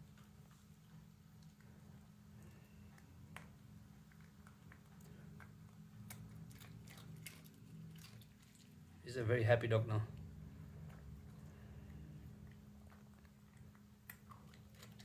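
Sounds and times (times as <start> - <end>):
dog chewing crunchy food: 0.0 - 8.9, 10.6 - 15.0.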